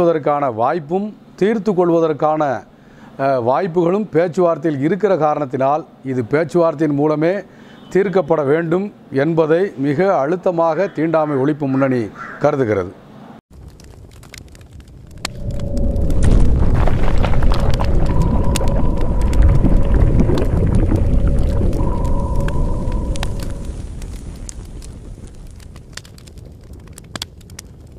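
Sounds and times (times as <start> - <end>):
deep rumble with crackling clicks: 13.5 - 27.9
steady held tones: 15.1 - 24.3.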